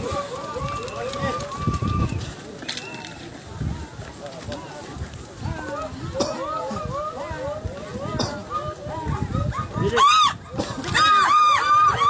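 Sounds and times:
running footsteps: 0:00.0 - 0:06.2.

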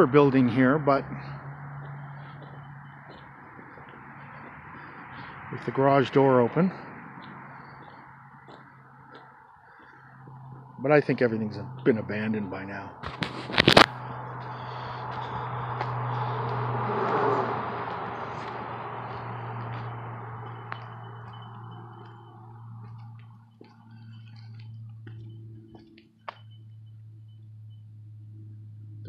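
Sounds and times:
vehicle passing by: 0:00.0 - 0:26.0
steady low hum: 0:00.0 - 0:29.0.

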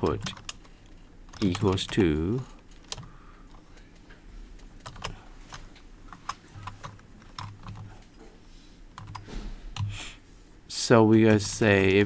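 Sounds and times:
computer keyboard typing: 0:00.0 - 0:00.7, 0:01.3 - 0:08.1, 0:08.9 - 0:10.0, 0:11.1 - 0:12.0.

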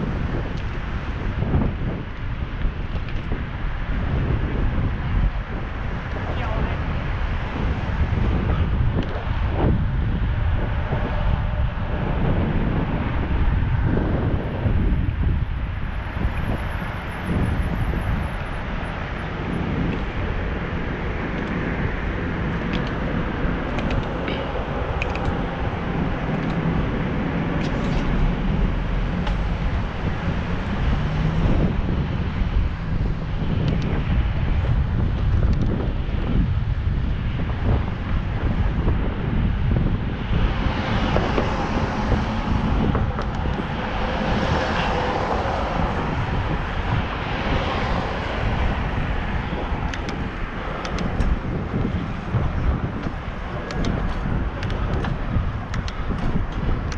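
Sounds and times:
hissy vehicle noise: 0:00.0 - 0:56.9
road and traffic noise: 0:00.0 - 0:56.9
wind buffeting microphone: 0:00.0 - 0:56.9.

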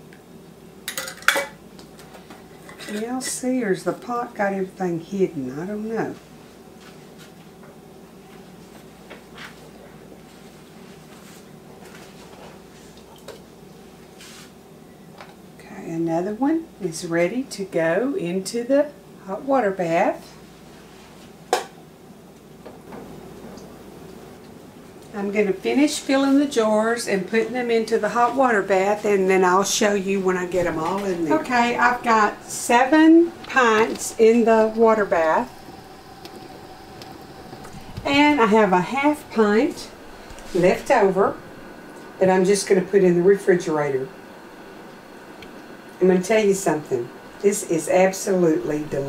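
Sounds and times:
faint steady noise: 0:00.0 - 0:49.0.

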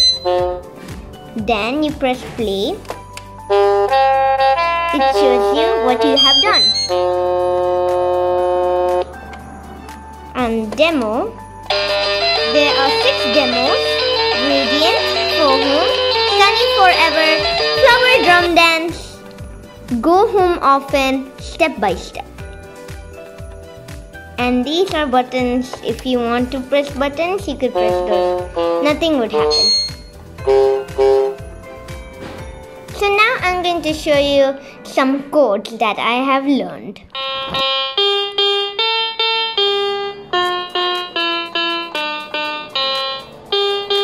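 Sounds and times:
electronic keyboard chord: 0:00.0 - 0:02.0, 0:02.8 - 0:20.0, 0:27.6 - 0:33.0, 0:37.1 - 0:44.0.

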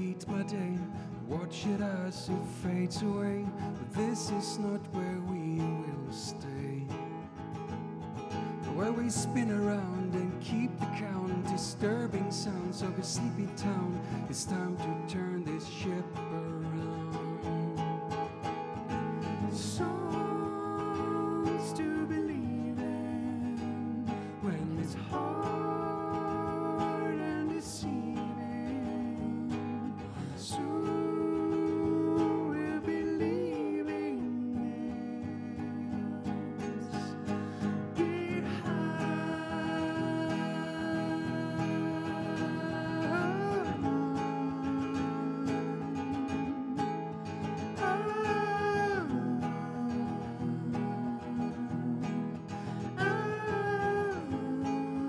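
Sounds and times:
person singing: 0:00.0 - 0:07.0, 0:08.6 - 0:18.4, 0:19.1 - 0:55.0
acoustic guitar strummed: 0:00.0 - 0:55.0.

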